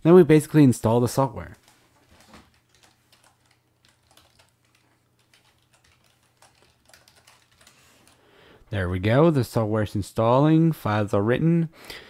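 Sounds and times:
faint keyboard keystrokes: 1.6 - 8.2.

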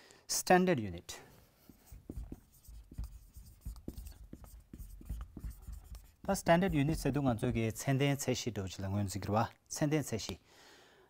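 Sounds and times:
marker writing on whiteboard: 1.5 - 8.3.

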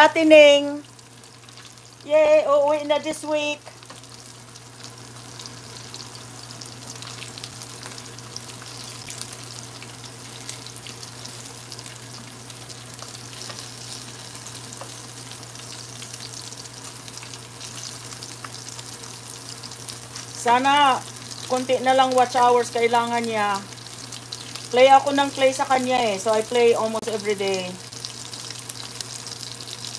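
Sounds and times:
calamari frying in hot oil: 0.0 - 29.9.

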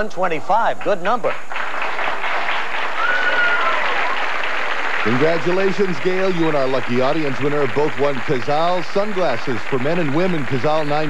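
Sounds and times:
audience applauding: 0.8 - 11.0
high call from crowd: 3.0 - 4.4.

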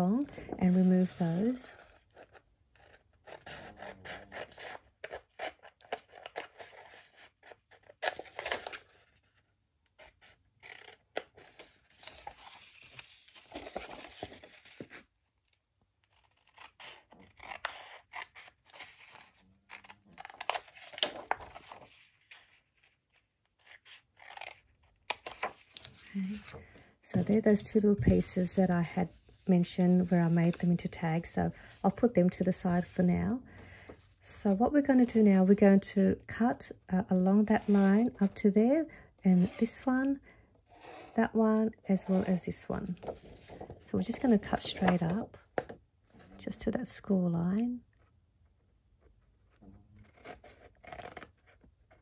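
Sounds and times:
scissors cutting paper: 10.1 - 11.6, 16.1 - 20.7, 23.6 - 24.6, 50.0 - 51.5.

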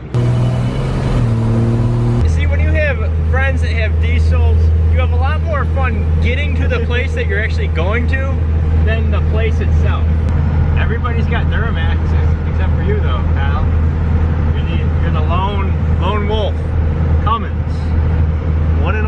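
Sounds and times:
truck engine and road drone: 0.0 - 19.0
people talking: 2.2 - 10.1, 10.8 - 13.8, 14.5 - 16.6, 17.3 - 18.0, 18.8 - 19.0.

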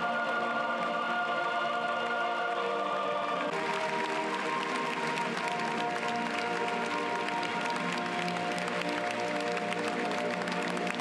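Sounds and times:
choir singing: 0.0 - 9.7
backing music: 0.0 - 11.0.

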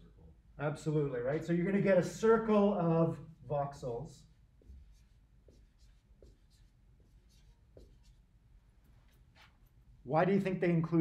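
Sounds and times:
marker scratching on whiteboard: 4.2 - 9.8.

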